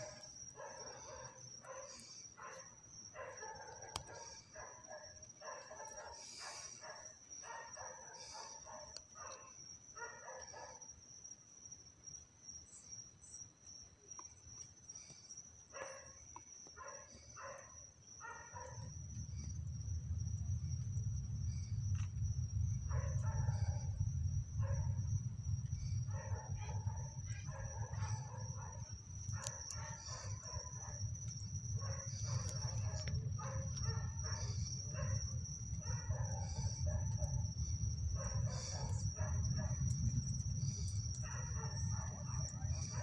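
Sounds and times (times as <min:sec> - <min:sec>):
distant rocket launch rumble: 0:19.0 - 0:30.4.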